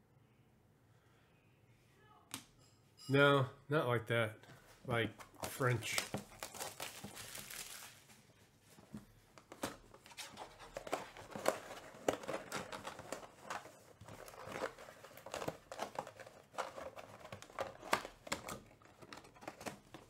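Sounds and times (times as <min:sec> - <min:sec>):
plastic shrink wrap crinkling: 0:05.4 - 0:08.4
cardboard box being opened: 0:09.5 - 0:20.0.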